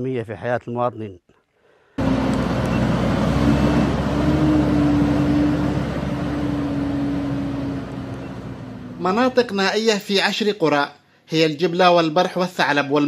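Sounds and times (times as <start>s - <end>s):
drilling rig engine running: 2.0s - 9.4s.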